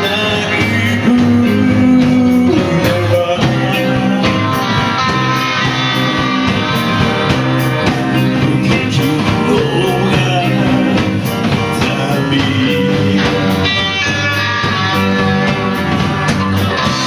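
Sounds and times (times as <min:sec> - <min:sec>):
bass guitar: 0:00.0 - 0:17.0
distorted electric guitars: 0:00.0 - 0:17.0
drum kit beat: 0:00.0 - 0:17.0.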